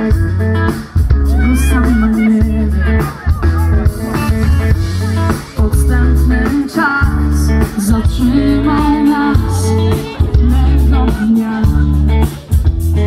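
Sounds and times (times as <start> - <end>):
live pop-rock band: 0.0 - 13.0
woman singing: 1.3 - 3.8, 5.2 - 12.4.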